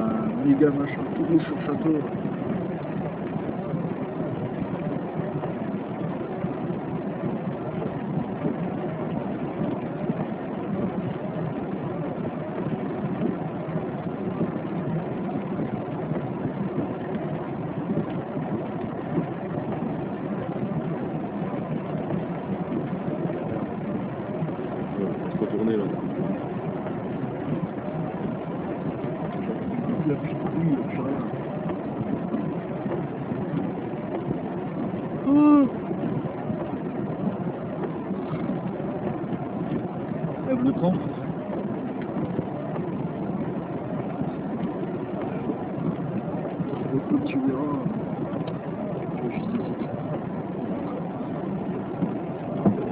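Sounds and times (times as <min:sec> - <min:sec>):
car engine idling: 0:00.0 - 0:52.9.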